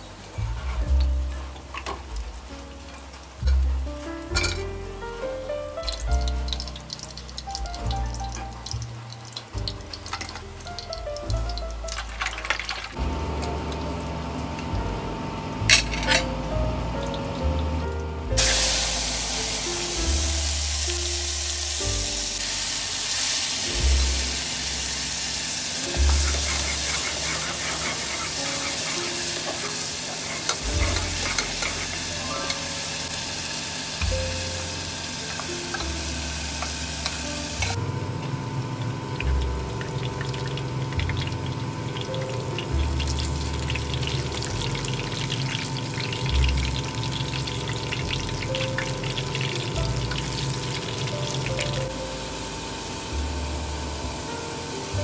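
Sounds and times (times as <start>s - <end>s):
food sizzling in hot oil: 0.0s - 14.6s, 15.6s - 55.0s
soft background music: 0.0s - 38.1s, 39.0s - 55.0s
battered pieces frying crackling: 0.0s - 53.6s
ladle stirring: 6.1s - 13.0s, 25.8s - 33.4s.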